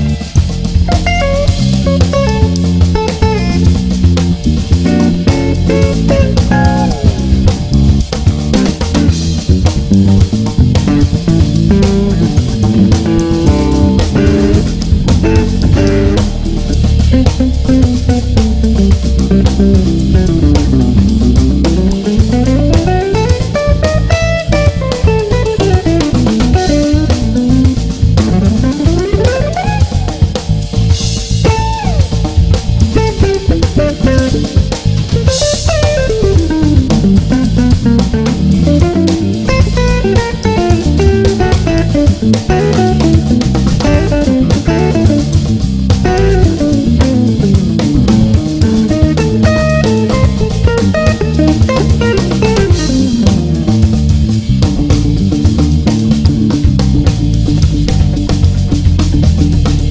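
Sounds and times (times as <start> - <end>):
bass and drums: 0.0 - 59.9
electric guitar runs: 0.0 - 59.9.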